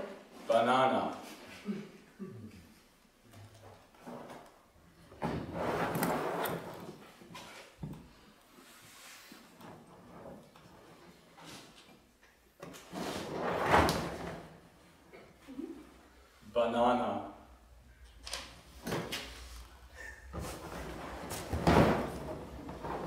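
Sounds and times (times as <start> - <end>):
scraping and rustling in plastic case: 20.4 - 23.0.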